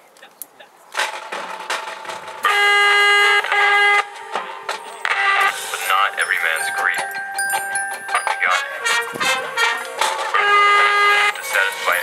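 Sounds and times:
sharp percussion hits: 1.0 - 12.0
brass band held chord: 2.5 - 6.6, 8.4 - 12.0.

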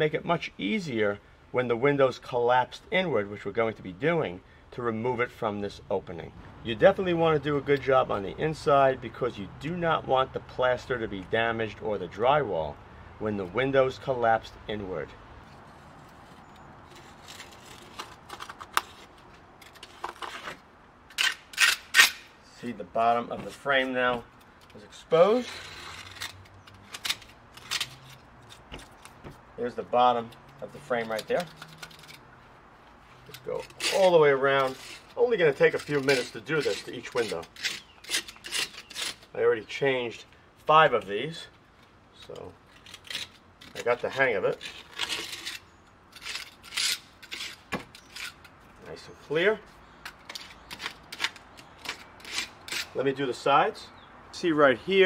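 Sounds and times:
utility knife blade scraping: 15.6 - 22.4, 25.2 - 29.2, 30.2 - 32.4, 33.2 - 39.3, 42.7 - 48.6, 50.0 - 53.1.

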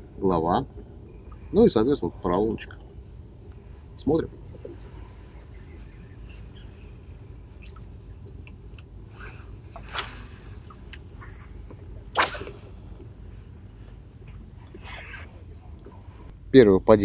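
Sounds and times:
open water background: 0.0 - 16.4.

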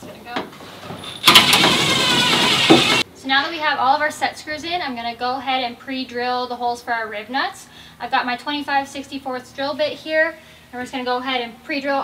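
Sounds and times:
cordless drill whining and grinding: 1.2 - 3.0.

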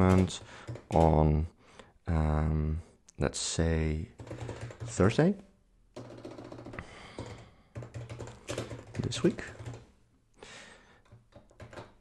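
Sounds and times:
keyboard typing: 0.0 - 1.2, 4.1 - 5.2, 6.0 - 9.9, 11.0 - 12.0.

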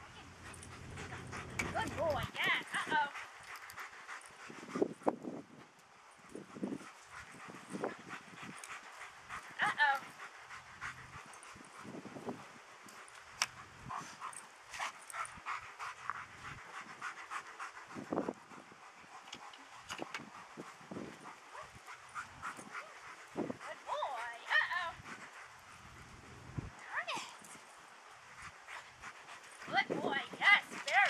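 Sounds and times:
weave poles clicking and rattling: 30.4 - 31.0.

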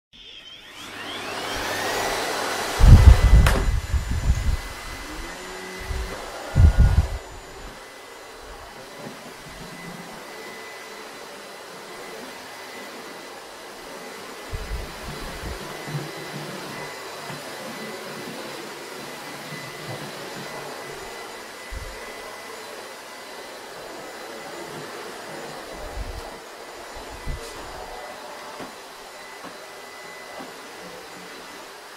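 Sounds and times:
vacuum cleaner running: 0.2 - 31.9.

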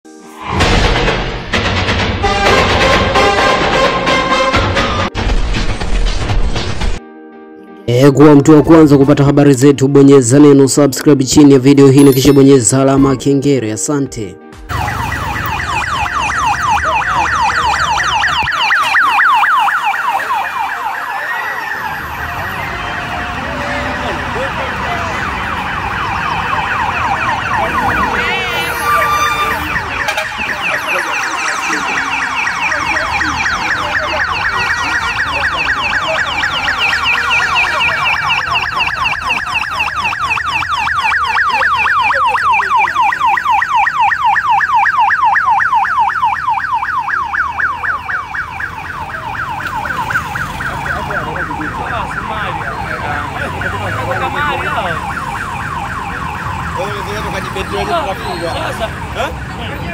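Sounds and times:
street noise: 0.0 - 7.0, 7.9 - 59.9
siren fast warble: 12.0 - 12.9, 14.7 - 59.9.

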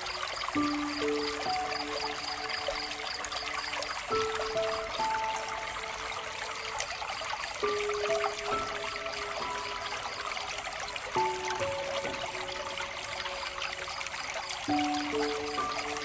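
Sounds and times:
soft background music: 0.0 - 16.0
water trickling from a fountain: 0.0 - 16.0.

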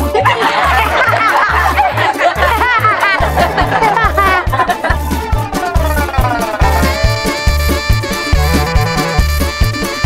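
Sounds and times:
boys laughing: 0.0 - 7.3
comic music with bass beat: 0.0 - 10.0.

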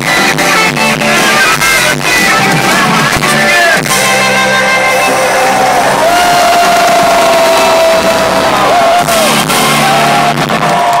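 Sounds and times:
live rock band playing: 0.0 - 11.0
crowd cheering: 2.6 - 11.0.

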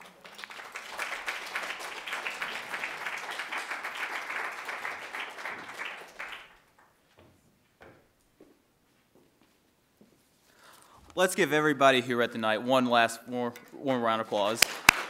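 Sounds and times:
audience applauding: 0.0 - 6.8, 14.6 - 15.0.

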